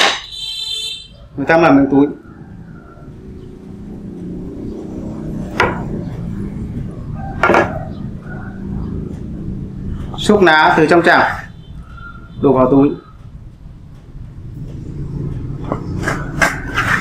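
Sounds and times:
sharp knocks: 0:00.0 - 0:00.3, 0:05.5 - 0:06.0, 0:07.4 - 0:07.9.

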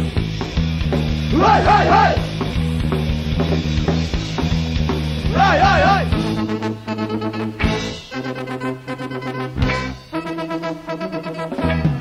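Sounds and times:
bass guitar: 0:00.0 - 0:12.0.

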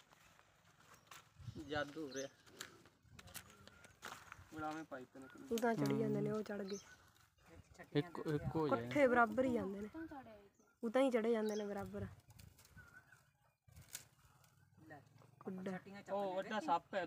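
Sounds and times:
person talking: 0:05.6 - 0:06.6.

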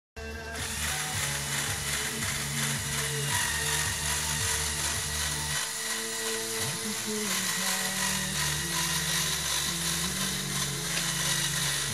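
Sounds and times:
toy motors and gears whirring: 0:00.6 - 0:11.9.

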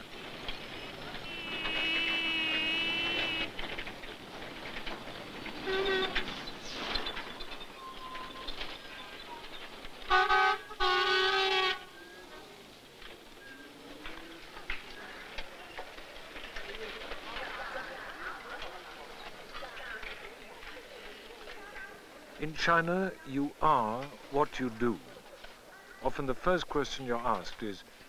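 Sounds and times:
rail yard rumble: 0:00.0 - 0:28.0
steam locomotive whistle: 0:01.2 - 0:03.5, 0:10.1 - 0:12.0.

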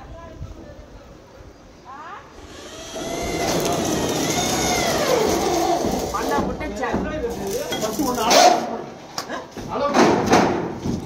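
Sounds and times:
power tool motor whining: 0:02.4 - 0:06.5.

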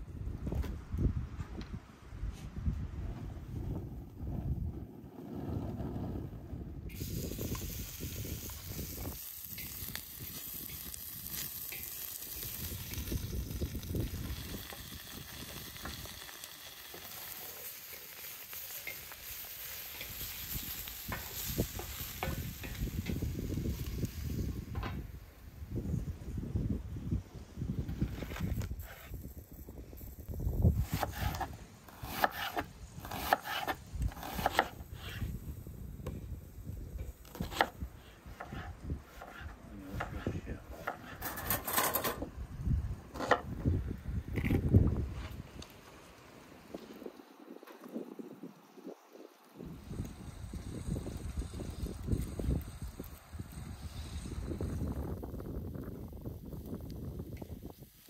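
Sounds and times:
meat sizzling in a pan: 0:06.9 - 0:24.6
knife chopping on wooden board: 0:30.9 - 0:34.7
wooden spatula scraping pan: 0:38.4 - 0:42.2.

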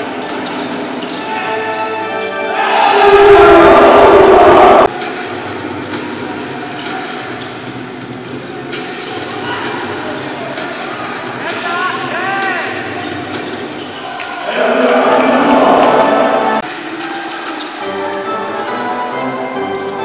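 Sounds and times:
arena crowd noise: 0:00.0 - 0:20.0
music playing: 0:00.0 - 0:20.0.

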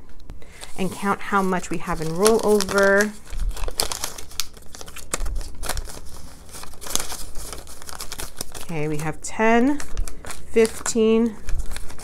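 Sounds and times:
banknotes crackling and snapping: 0:00.5 - 0:12.0
paper bills rustling: 0:00.5 - 0:12.0.

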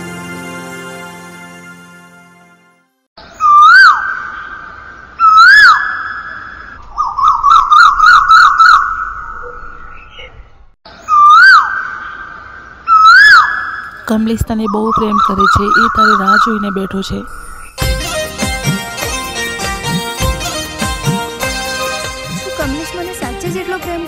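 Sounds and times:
bird-like whistled call: 0:03.2 - 0:12.3.

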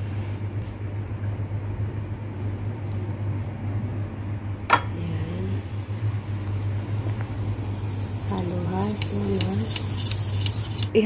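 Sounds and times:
low mechanical hum: 0:00.0 - 0:11.0
whisk clicking in metal pot: 0:08.3 - 0:11.0.

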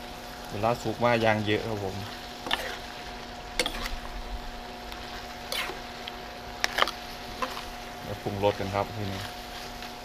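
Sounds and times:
faint frying: 0:00.0 - 0:10.0
steady hum: 0:00.0 - 0:10.0
metal spatula scraping wok: 0:02.0 - 0:04.2, 0:04.9 - 0:06.0, 0:06.6 - 0:07.9.

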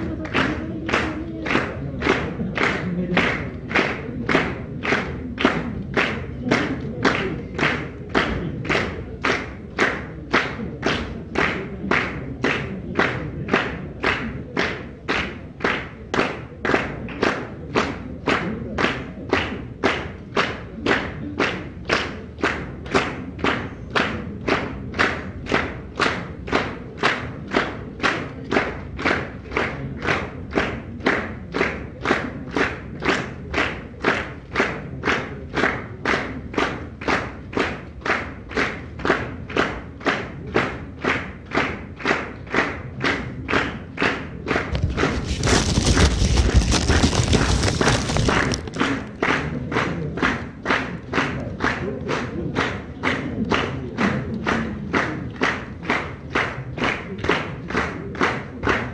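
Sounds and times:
audience clapping in unison: 0:00.0 - 0:58.9.

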